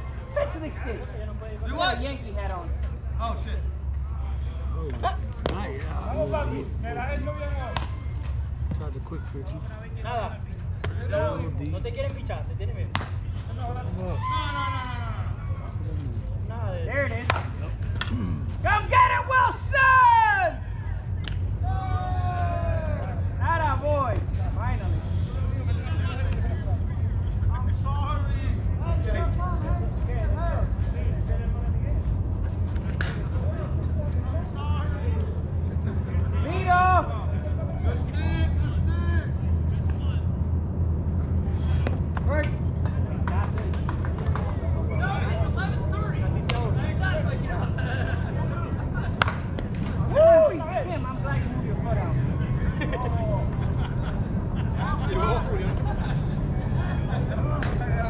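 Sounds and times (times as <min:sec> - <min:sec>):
distant shouts and chatter: 0:00.0 - 0:58.0
steady low rumble: 0:00.0 - 0:58.0
bat hitting ball: 0:12.9 - 0:13.2.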